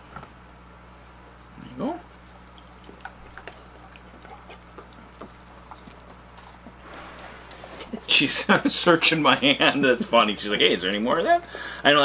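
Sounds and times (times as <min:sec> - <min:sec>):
faint steady hum: 0:00.0 - 0:12.0
dog chewing and licking: 0:02.1 - 0:08.0.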